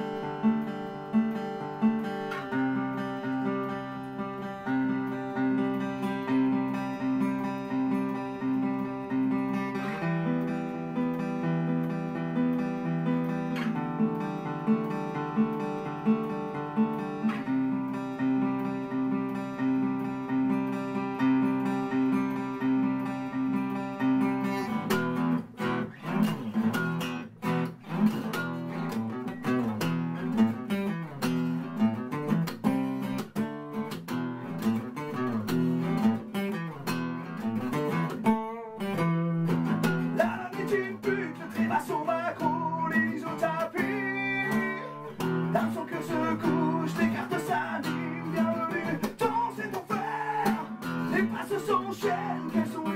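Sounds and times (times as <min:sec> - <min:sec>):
acoustic guitar chords and strumming: 0:00.0 - 0:52.9.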